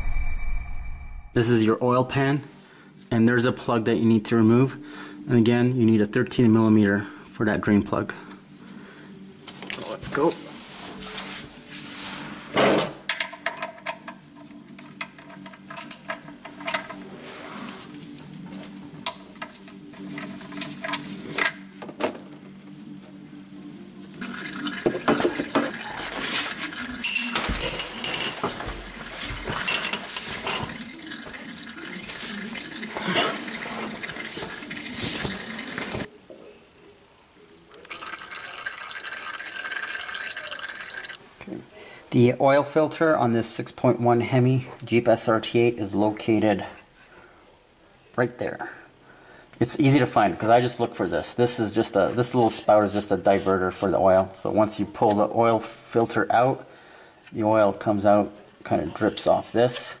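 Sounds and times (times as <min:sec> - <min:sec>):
oil pouring into pan: 0:24.2 - 0:27.0, 0:37.7 - 0:41.2.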